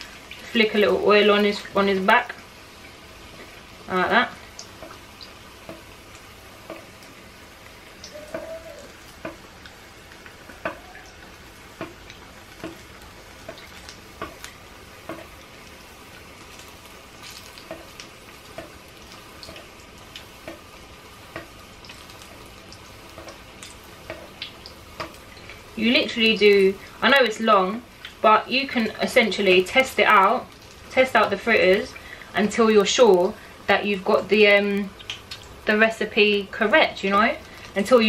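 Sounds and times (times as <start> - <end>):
fritter sizzling in hot oil: 0.0 - 38.0.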